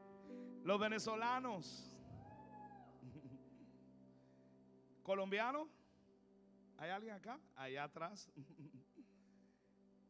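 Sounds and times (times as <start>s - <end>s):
faint steady background tone: 0.0s - 10.0s.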